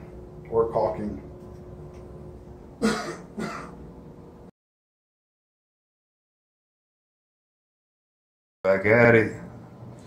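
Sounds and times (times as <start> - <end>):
man clearing his throat: 2.8 - 3.8.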